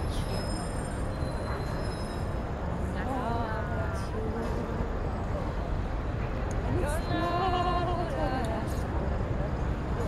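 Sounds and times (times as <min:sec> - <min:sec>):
city traffic rumble: 0:00.0 - 0:10.0.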